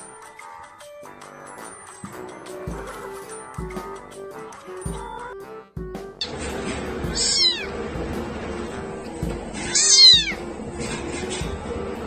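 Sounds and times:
kitten mewing: 7.0 - 7.7, 9.6 - 10.5.

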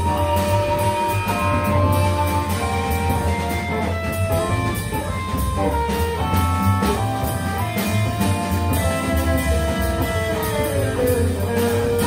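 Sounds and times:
double bass line: 0.0 - 12.0
electric guitars sliding notes: 0.0 - 12.0.

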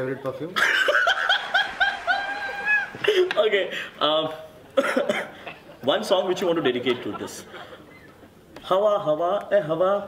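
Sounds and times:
man laughing high-pitched: 0.6 - 3.4.

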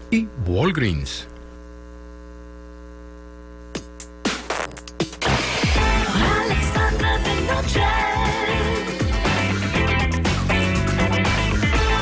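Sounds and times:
electrical mains hum: 0.0 - 9.8.

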